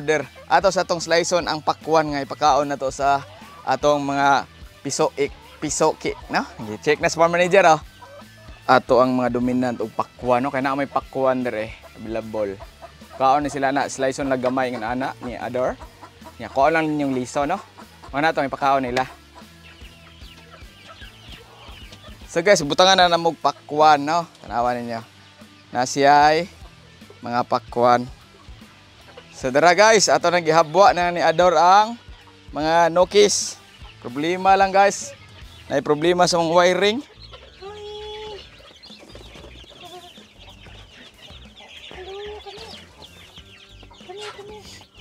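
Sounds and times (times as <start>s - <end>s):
background music with steady beat: 0.0s - 45.0s
chicks peeping: 0.0s - 45.0s.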